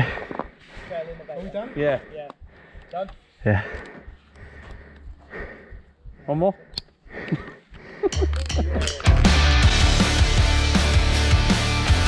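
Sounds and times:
rock backing track: 8.1s - 12.0s.

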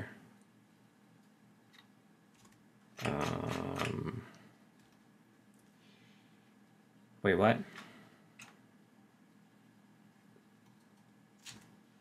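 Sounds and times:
raspy growl-like vocal sound: 3.0s - 4.3s.

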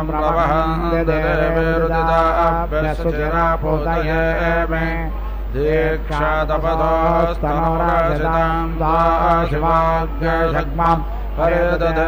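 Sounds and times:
man chanting: 0.0s - 12.0s
steady low hum: 0.0s - 12.0s.

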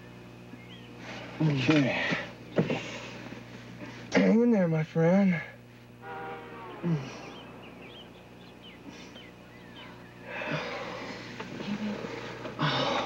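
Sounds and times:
faint high chirps: 6.0s - 10.3s
man groaning: 6.8s - 7.3s
man breathing hard in pain: 8.8s - 11.4s, 12.6s - 13.0s.

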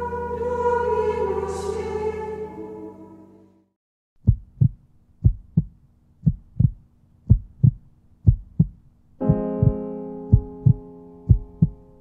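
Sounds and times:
heartbeat thumps: 4.2s - 11.9s
faint steady low tone: 4.2s - 12.0s.

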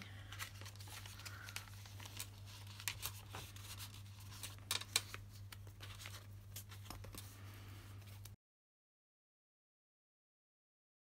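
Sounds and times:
paper pages rustling: 0.1s - 8.4s.

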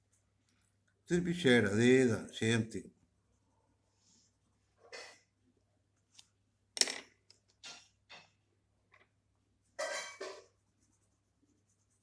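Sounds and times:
pencil scratching on paper: 10.3s - 12.0s.

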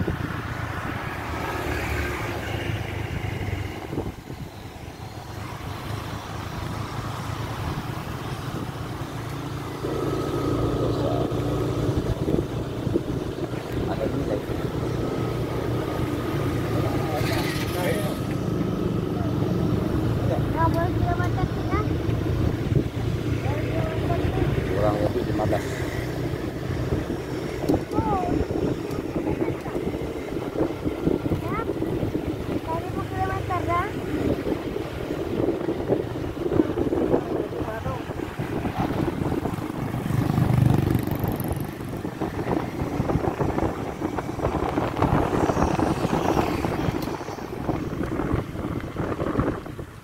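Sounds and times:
engine running: 0.0s - 50.0s
wind buffeting microphone: 0.0s - 50.0s.

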